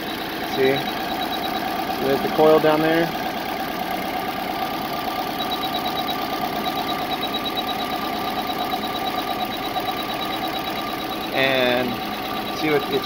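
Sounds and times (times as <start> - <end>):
engine idling with misfire: 0.0 - 13.0.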